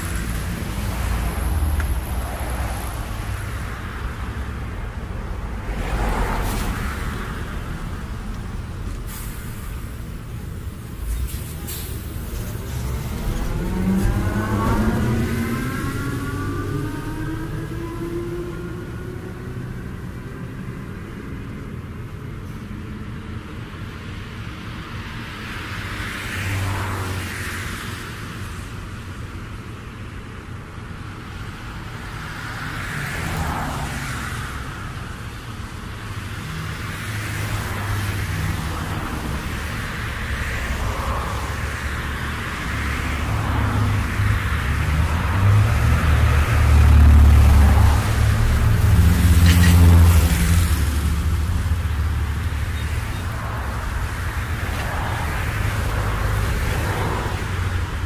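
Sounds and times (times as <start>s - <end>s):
vehicles passing by: 0.0s - 58.0s
engine revving up: 12.7s - 19.7s.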